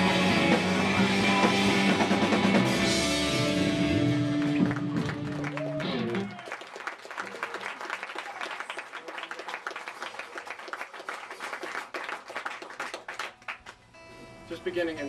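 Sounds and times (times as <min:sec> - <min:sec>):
rock band final chord: 0:00.0 - 0:06.3
audience applauding: 0:03.9 - 0:13.8.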